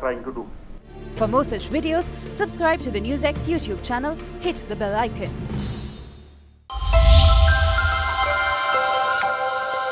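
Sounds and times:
bell-like chimes: 0:06.7 - 0:09.9.

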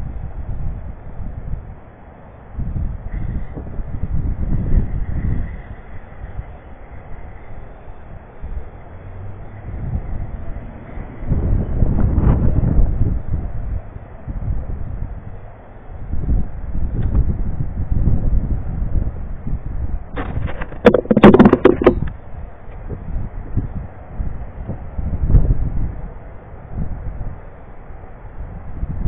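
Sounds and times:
wind buffeting microphone: 0:02.6 - 0:06.6, 0:09.6 - 0:15.3, 0:16.0 - 0:27.4
clattering knocks: 0:20.2 - 0:22.1.

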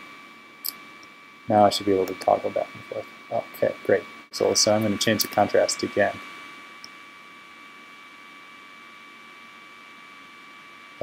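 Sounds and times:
background hiss: 0:00.0 - 0:11.0
faint high whine: 0:00.0 - 0:11.0.

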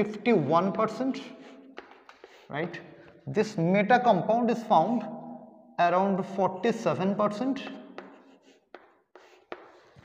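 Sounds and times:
chalk scratching on chalkboard: 0:00.5 - 0:02.8, 0:07.6 - 0:10.0.

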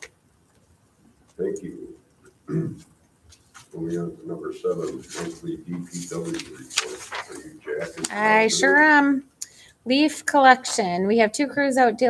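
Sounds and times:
person talking: 0:01.4 - 0:02.8, 0:03.8 - 0:09.3.

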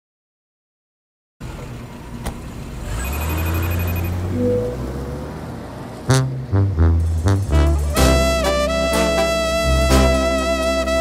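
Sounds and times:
high beeps: 0:02.9 - 0:04.9
brass band staccato hits: 0:06.1 - 0:11.0.

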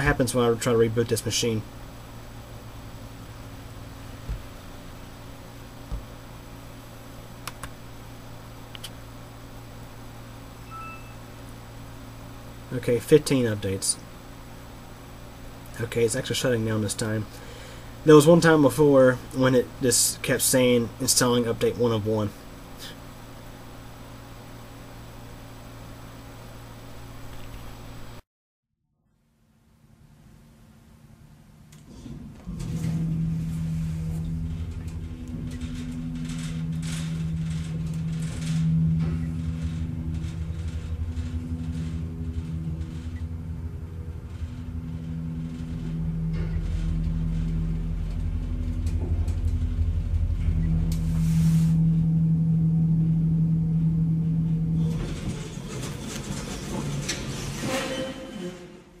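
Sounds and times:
elevator humming and rumbling: 0:00.0 - 0:28.2, 0:29.3 - 0:59.0.

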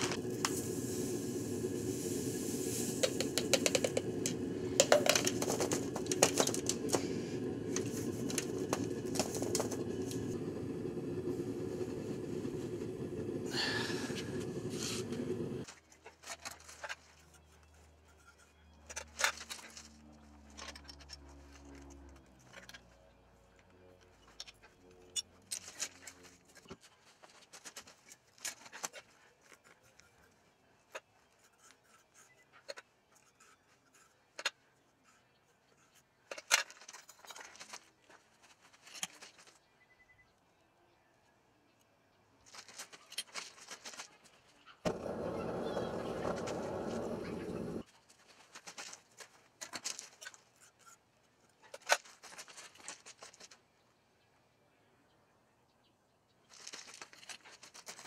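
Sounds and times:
steady hiss: 0:00.0 - 0:15.6.

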